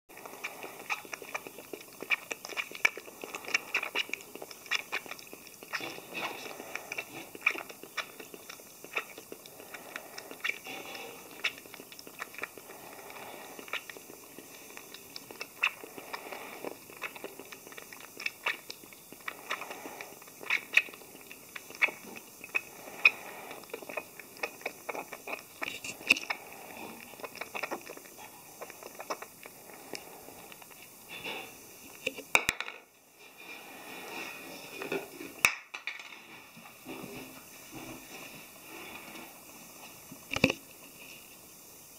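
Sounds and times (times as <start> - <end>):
animal suckling from bottle: 0.1 - 32.3.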